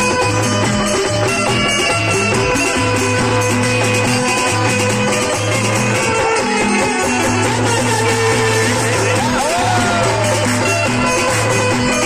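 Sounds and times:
devotional music over pa system: 0.0s - 12.0s.

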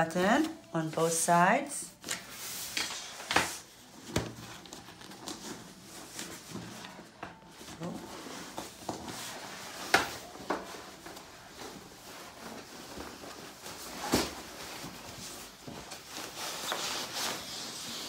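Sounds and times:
fabric rustling: 2.0s - 18.0s.

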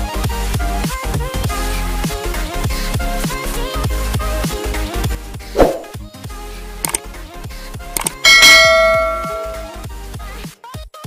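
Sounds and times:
short click: 8.0s - 8.2s
bell ding: 8.0s - 9.8s.

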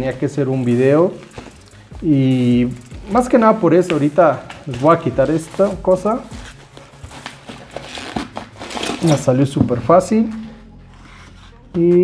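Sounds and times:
bubble wrap crinkling: 2.7s - 11.4s.

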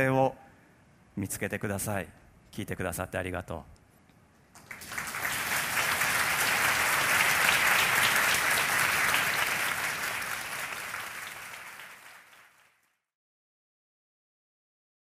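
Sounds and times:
audience applauding: 4.6s - 12.8s.

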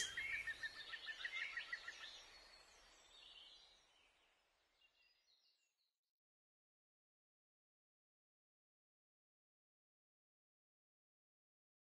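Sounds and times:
bird chirping: 0.0s - 2.4s.

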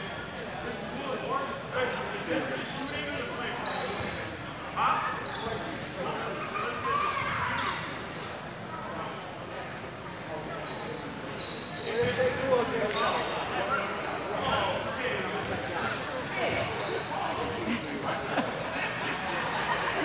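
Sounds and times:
voices of people: 0.0s - 20.0s
sneaker squeaks: 2.8s - 4.4s, 5.1s - 5.9s, 7.2s - 18.6s.

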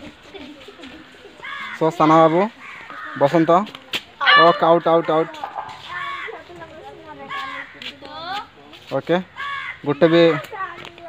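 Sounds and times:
background talk: 0.0s - 11.0s
boys calling out: 4.1s - 8.6s, 9.3s - 11.0s.

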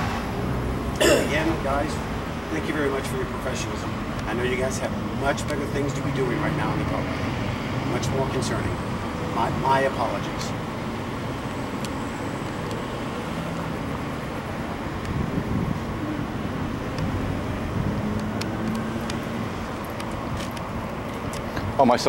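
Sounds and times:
low vehicle engine drone: 0.0s - 22.0s
road traffic noise: 0.0s - 22.0s.

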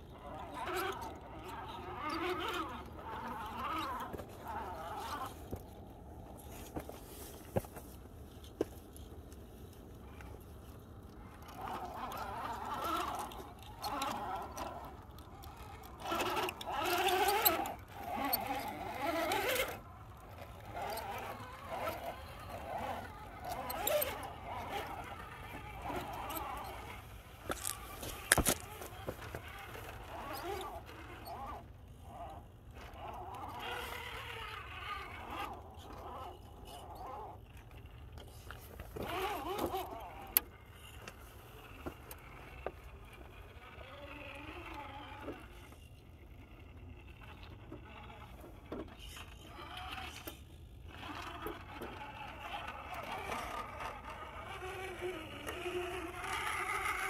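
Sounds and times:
electric motor whining: 0.0s - 7.7s, 10.0s - 57.0s
tyres scrabbling over rock: 1.9s - 10.6s, 11.2s - 37.4s.

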